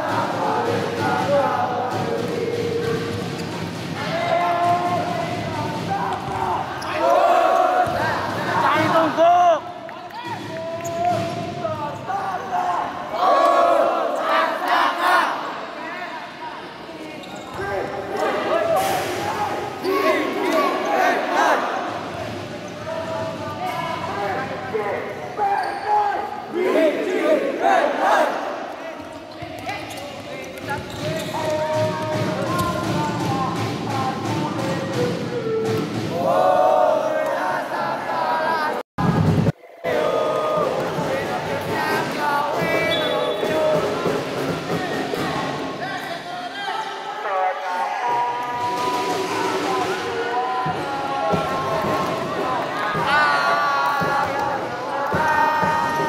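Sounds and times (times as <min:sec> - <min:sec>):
players and supporters shouting: 0:04.0 - 0:15.7, 0:17.3 - 0:22.1.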